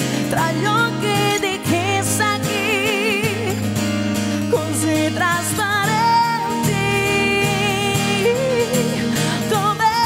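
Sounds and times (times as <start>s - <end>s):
acoustic guitars: 0.0s - 10.0s
woman singing with vibrato: 0.0s - 10.0s.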